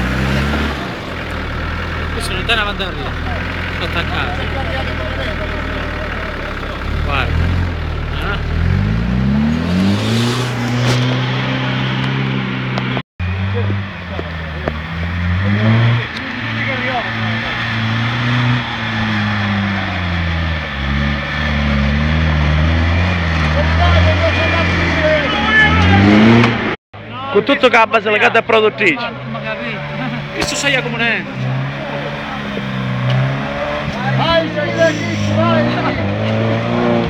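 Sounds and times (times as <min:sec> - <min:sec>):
off-road engine revving: 0:00.0 - 0:37.0.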